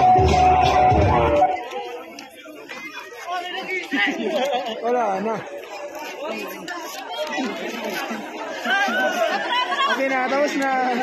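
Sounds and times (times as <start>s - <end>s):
overlapping background chatter: 0.0s - 11.0s.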